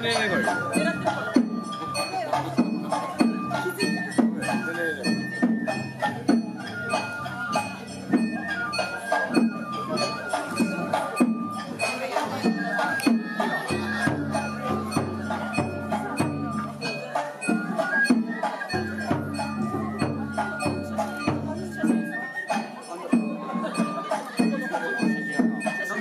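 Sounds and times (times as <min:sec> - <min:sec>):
voices calling out: 0:00.0 - 0:26.0
transverse flutes melody: 0:02.9 - 0:23.1.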